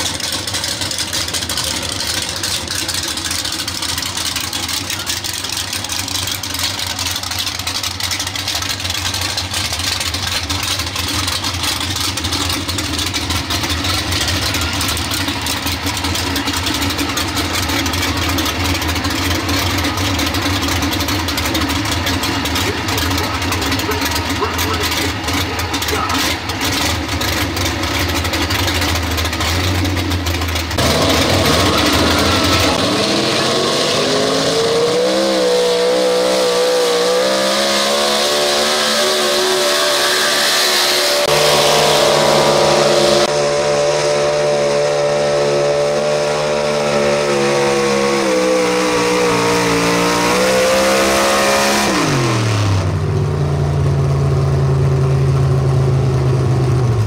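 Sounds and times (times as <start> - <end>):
truck engine idling and revving: 0.0 - 57.0.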